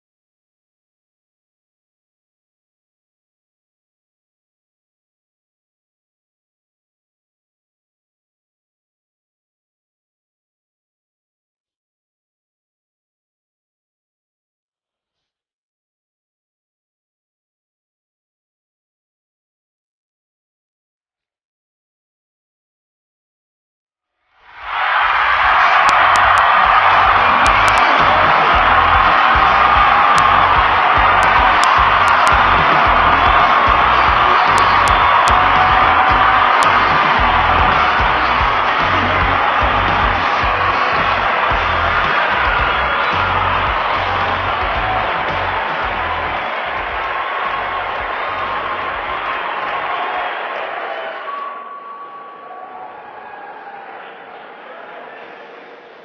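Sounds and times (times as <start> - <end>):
audience cheering and applauding: 24.5 - 55.8.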